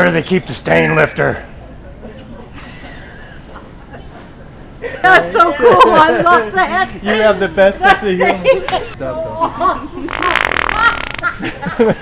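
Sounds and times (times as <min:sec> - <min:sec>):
wet fart sound: 0:10.1 - 0:11.4.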